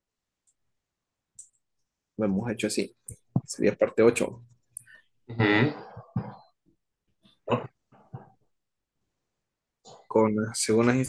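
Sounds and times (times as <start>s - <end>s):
person clearing throat: 7.5s - 7.8s.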